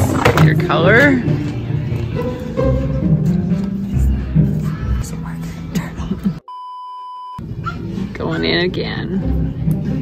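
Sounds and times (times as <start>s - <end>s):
background music: 0.0s - 6.4s, 7.4s - 10.0s
electronic test-tone beep: 6.5s - 7.4s.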